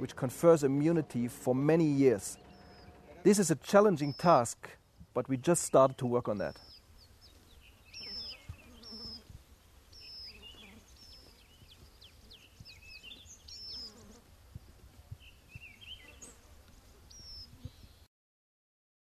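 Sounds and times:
faint low buzz: 0:00.2 - 0:04.2
small birds chirping: 0:01.9 - 0:18.1.

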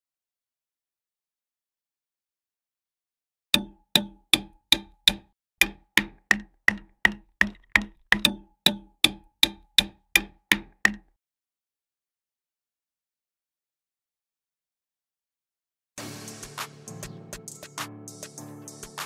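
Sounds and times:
hammer striking wall anchors: 0:03.6 - 0:11.1.

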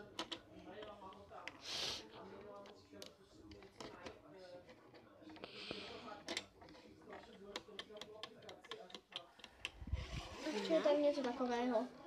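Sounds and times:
quiet murmured speech: 0:00.0 - 0:12.0.

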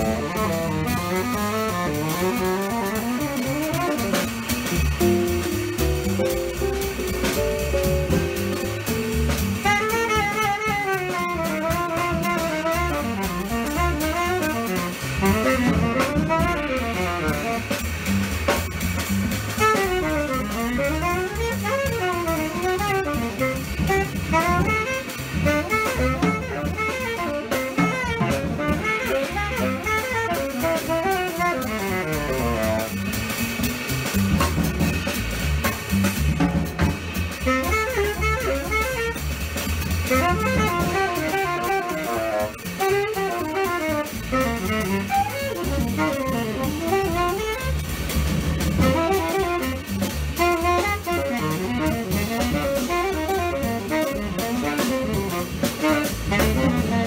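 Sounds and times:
drum kit: 0:00.0 - 0:57.0
tenor saxophone jazz improvising: 0:00.0 - 0:57.0
walking double bass: 0:00.0 - 0:57.0.

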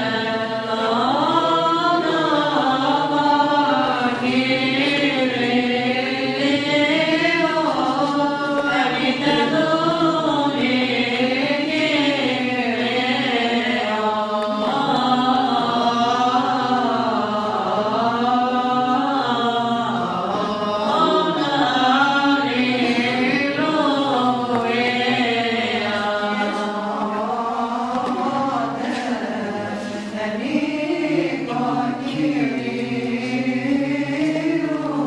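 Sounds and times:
voices chanting ornamented melody: 0:00.0 - 0:35.0.

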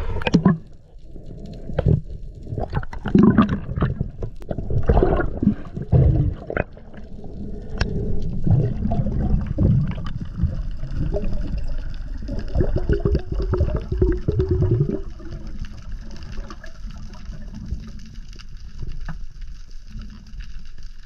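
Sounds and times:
underwater gurgling: 0:00.0 - 0:21.0.

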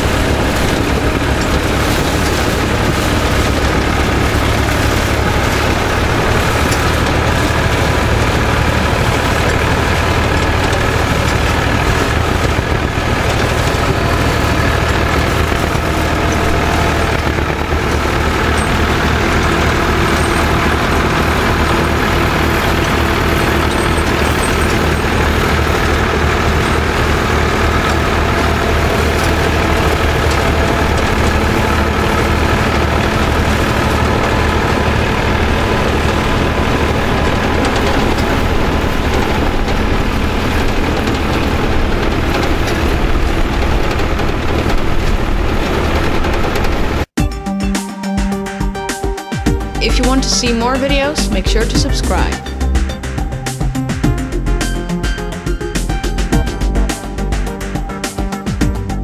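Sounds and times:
tractor engines under load: 0:00.0 - 0:47.2, 0:49.5 - 0:59.0.

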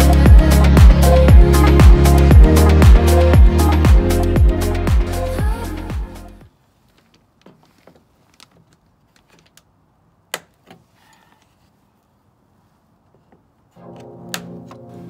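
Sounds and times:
background music: 0:00.0 - 0:06.5, 0:13.8 - 0:15.0.

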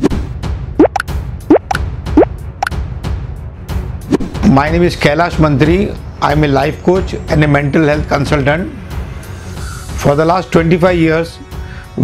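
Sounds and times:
background music with low bass: 0:00.0 - 0:12.0
high pips: 0:00.8 - 0:01.8.

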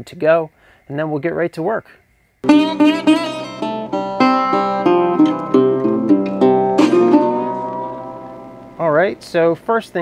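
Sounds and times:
plucked acoustic guitar: 0:02.4 - 0:08.8.

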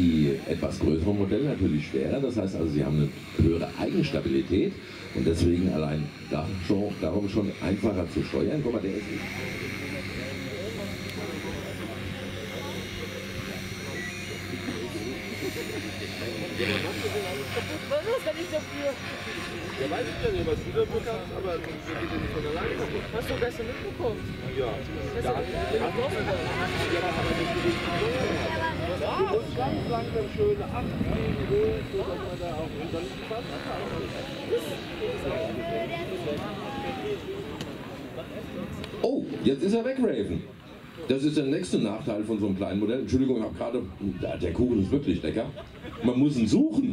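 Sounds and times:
people talking: 0:00.0 - 0:46.9
rc helicopter rotor hum: 0:00.0 - 0:46.9.

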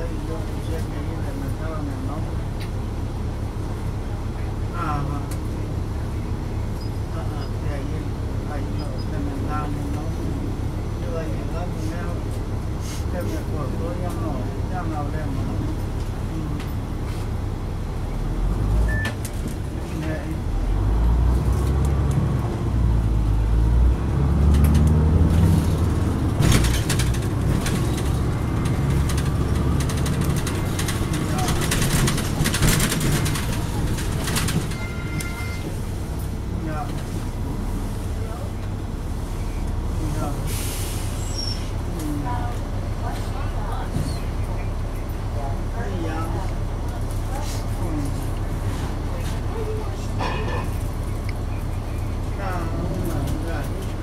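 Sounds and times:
bus diesel engine rumble: 0:00.0 - 0:54.0
sharp cabin rattles: 0:25.8 - 0:34.8.

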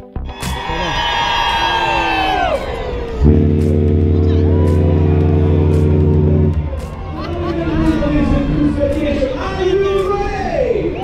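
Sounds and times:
crowd voices and cheering: 0:00.3 - 0:11.0
ship horn low blast: 0:02.5 - 0:08.9.

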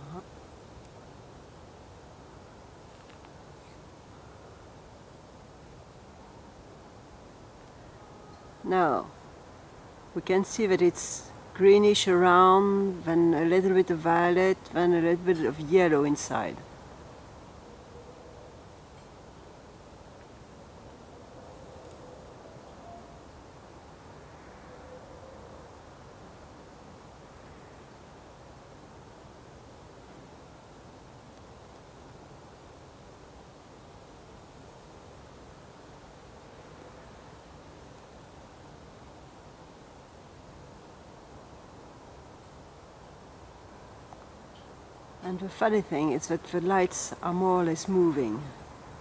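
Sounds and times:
faint steady hiss: 0:00.0 - 0:49.0.

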